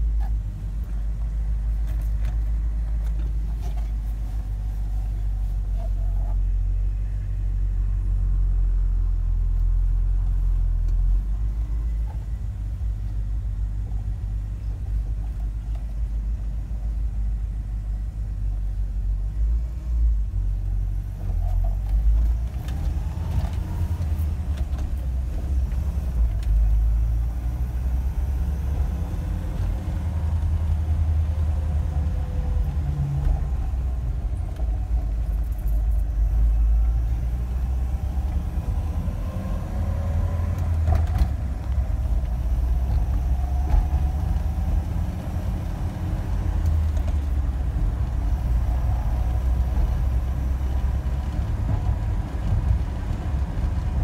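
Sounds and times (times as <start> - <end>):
pickup truck engine and road rumble: 0.0 - 54.0.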